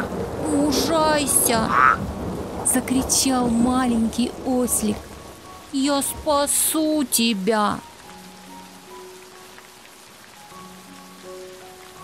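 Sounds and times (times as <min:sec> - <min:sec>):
steady rain falling: 0:00.0 - 0:12.0
soft music with long notes: 0:03.5 - 0:12.0.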